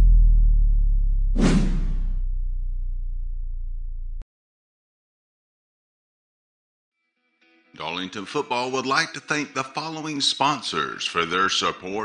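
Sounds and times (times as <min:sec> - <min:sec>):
swoosh: 0:00.0 - 0:02.9
deep bass hit: 0:00.0 - 0:04.2.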